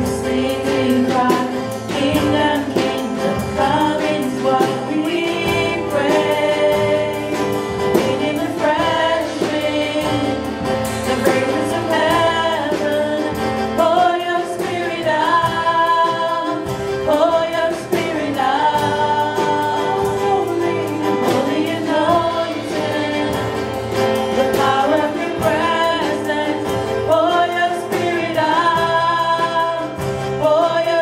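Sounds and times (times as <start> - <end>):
acoustic guitar: 0.0 - 31.0
band accompaniment: 0.0 - 31.0
people singing worship song: 0.0 - 31.0.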